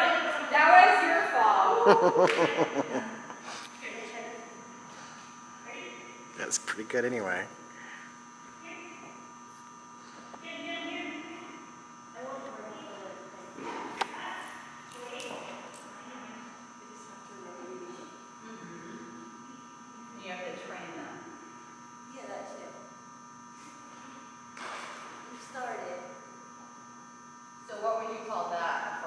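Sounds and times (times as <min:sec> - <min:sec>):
electrical hum: 0:00.0 - 0:29.0.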